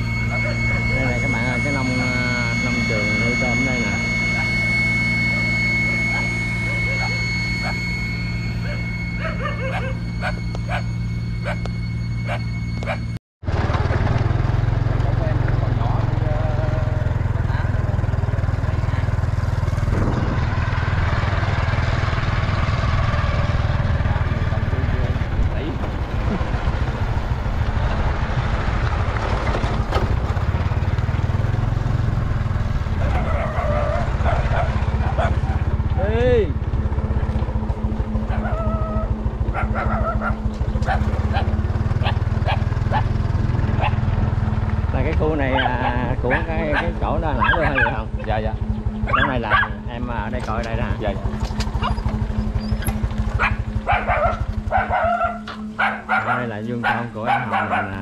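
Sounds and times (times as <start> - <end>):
small motorbike engine running: 0.0 - 58.0
wind on microphone: 19.8 - 20.8.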